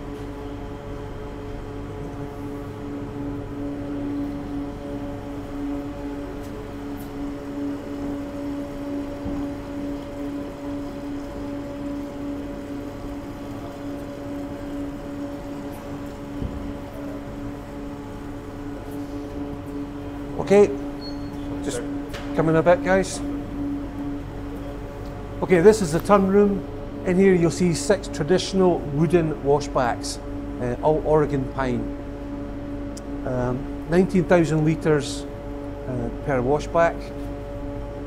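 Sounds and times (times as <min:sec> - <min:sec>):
steady machinery hum: 0:00.0 - 0:38.0.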